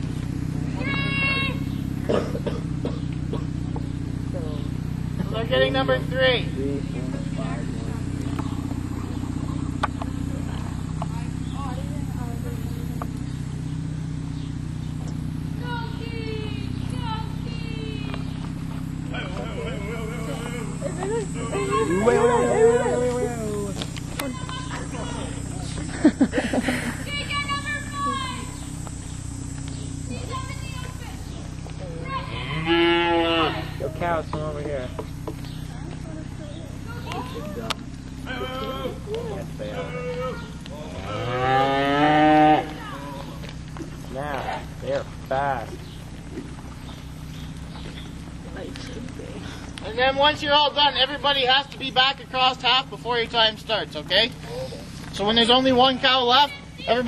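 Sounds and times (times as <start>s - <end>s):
engine idling hum: 0.0s - 57.0s
faint distant voices: 0.0s - 57.0s
young cow bawling: 19.1s - 25.6s, 32.1s - 33.9s.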